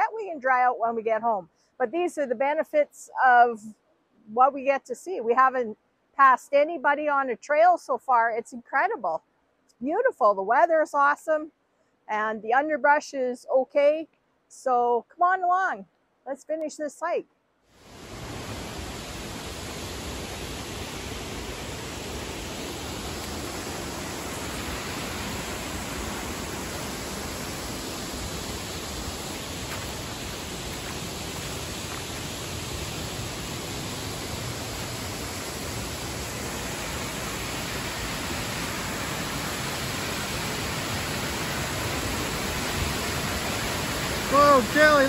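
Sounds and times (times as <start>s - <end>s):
waterfall rushing: 17.8s - 45.0s.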